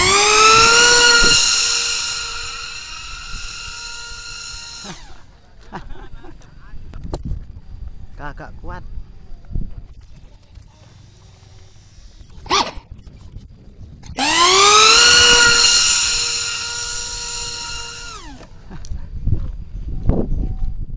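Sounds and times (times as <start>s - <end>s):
model plane motor whine: 0.0s - 5.3s, 14.2s - 18.5s.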